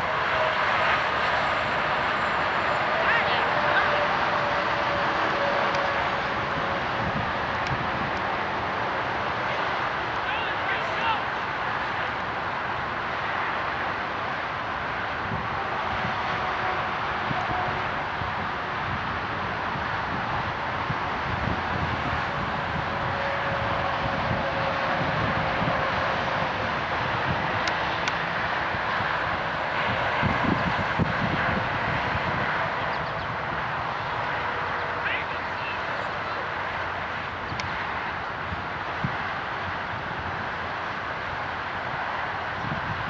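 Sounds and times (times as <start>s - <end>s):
steady rush of noise: 0.0s - 43.0s.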